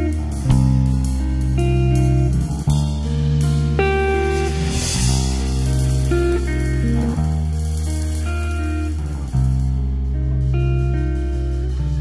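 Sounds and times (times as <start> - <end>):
instrumental rock music: 0.0 - 12.0.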